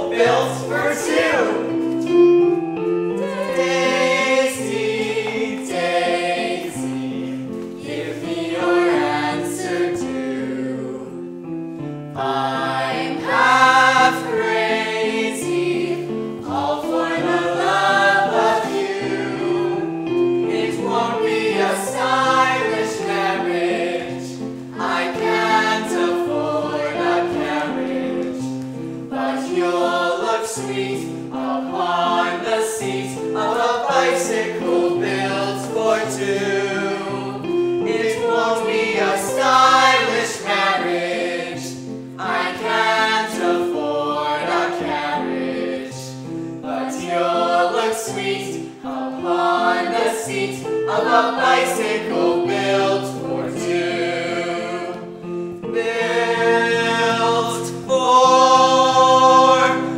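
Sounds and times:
group of voices singing: 0.0 - 11.5, 12.2 - 59.9.

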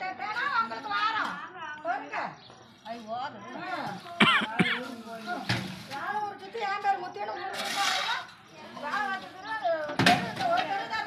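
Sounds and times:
people talking: 0.0 - 11.0
person coughing: 4.2 - 4.9.

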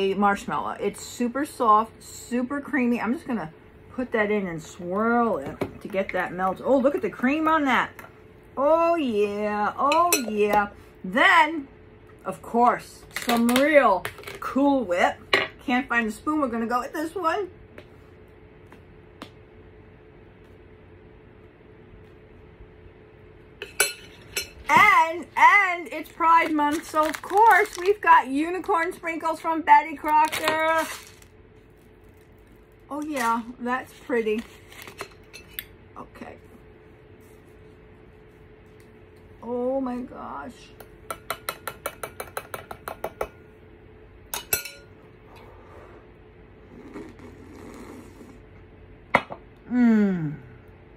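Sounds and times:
woman speaking: 0.0 - 8.0, 8.6 - 17.6, 24.7 - 31.1, 32.9 - 34.5, 35.9 - 36.5, 39.4 - 40.8
metal spoon clinking dishware: 23.6 - 24.6, 44.4 - 44.9
breathy blowing: 45.2 - 48.4.

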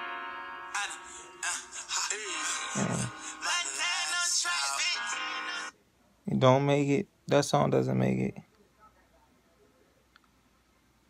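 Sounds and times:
hip-hop song with auto-tuned vocals: 0.7 - 5.8.

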